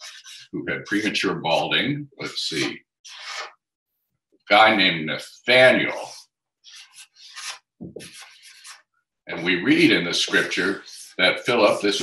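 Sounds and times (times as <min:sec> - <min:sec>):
marker scratching on paper: 0:00.0 - 0:01.2, 0:02.6 - 0:03.5, 0:06.0 - 0:08.8, 0:09.8 - 0:11.2.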